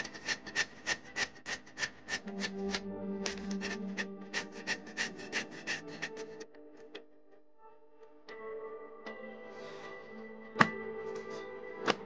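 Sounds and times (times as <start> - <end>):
blade scraping bark: 0.0 - 6.4.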